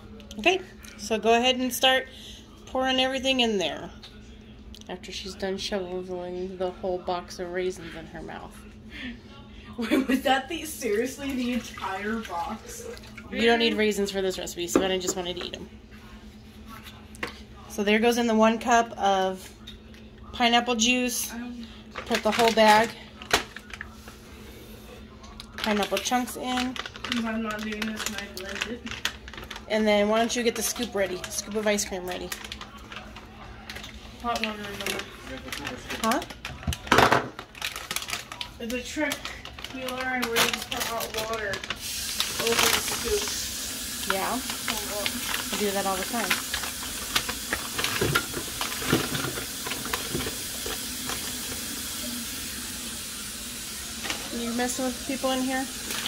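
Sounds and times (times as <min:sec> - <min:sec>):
tap water running: 0:10.2 - 0:15.5, 0:39.8 - 0:56.0
containers clicking and knocking: 0:44.0 - 0:51.7.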